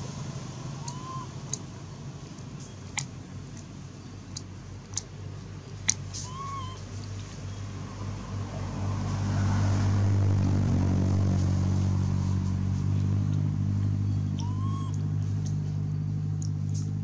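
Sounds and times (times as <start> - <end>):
vehicle engine humming: 0.0 - 17.0.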